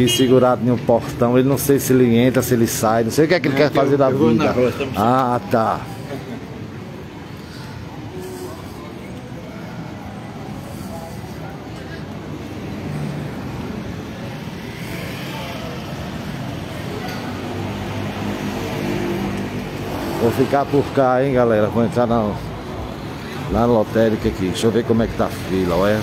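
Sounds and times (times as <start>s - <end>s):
road traffic: 0.0s - 26.0s.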